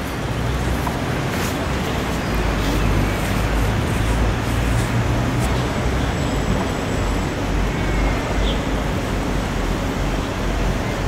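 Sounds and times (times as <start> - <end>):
city road traffic hum: 0.0 - 11.0.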